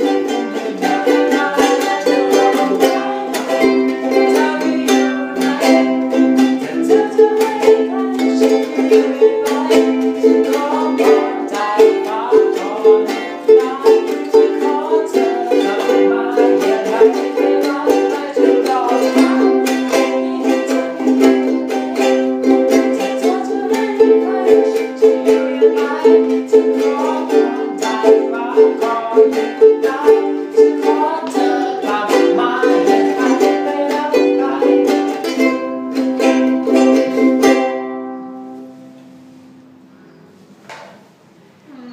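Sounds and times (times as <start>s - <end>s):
boy singing: 0.0s - 37.9s
ukulele strumming: 0.0s - 40.9s.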